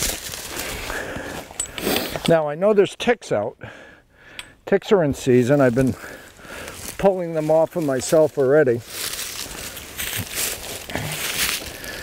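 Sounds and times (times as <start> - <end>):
footsteps rustling dry leaves: 0.0 - 1.5, 5.4 - 12.0.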